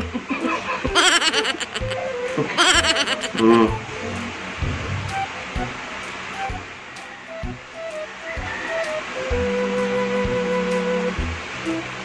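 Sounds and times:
person laughing: 0.0 - 2.0, 2.6 - 3.7
soft background music: 0.0 - 12.0.

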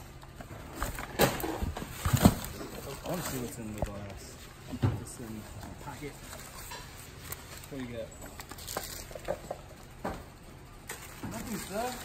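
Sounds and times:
wrapping paper rustling: 1.9 - 4.6, 5.2 - 9.3, 10.9 - 12.0.

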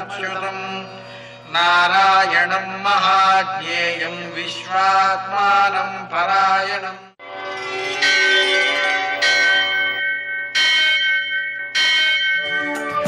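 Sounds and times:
temple bell ringing: 7.2 - 13.0
music: 12.1 - 13.0.

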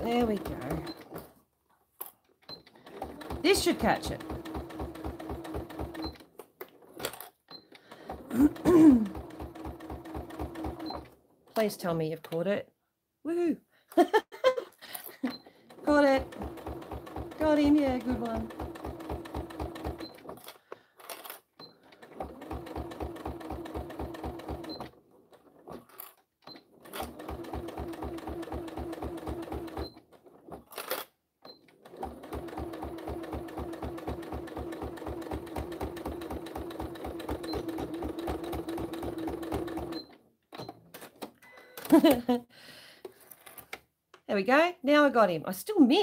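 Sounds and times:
sewing machine stitching: 0.0 - 1.4, 2.4 - 11.7, 15.2 - 41.3
sewing machine clicks: 2.4 - 11.2, 15.7 - 42.2.

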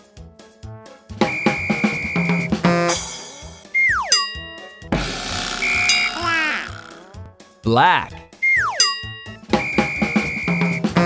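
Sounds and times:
falling chirps: 5.0 - 7.2
children's music: 5.9 - 11.0.

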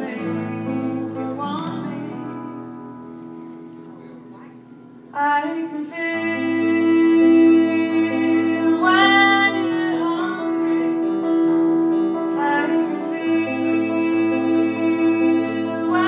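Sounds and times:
acoustic guitars: 0.0 - 16.0
woman singing: 5.2 - 11.2, 12.3 - 16.0.

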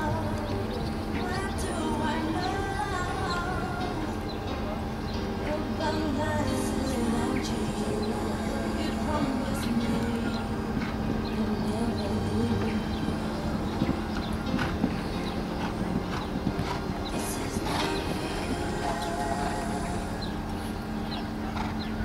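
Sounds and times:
background music: 0.0 - 22.0
background voices: 0.0 - 22.0
horse hoofbeats: 9.5 - 19.6, 21.1 - 22.0.

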